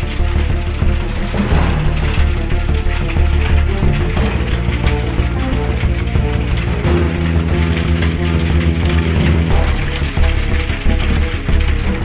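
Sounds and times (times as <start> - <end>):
fast dense clicking rhythm: 0.0 - 12.0
sustained low music notes: 0.0 - 12.0.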